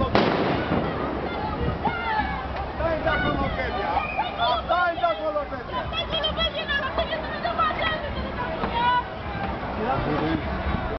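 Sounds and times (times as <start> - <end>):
loud explosive bang: 0.0 - 1.4.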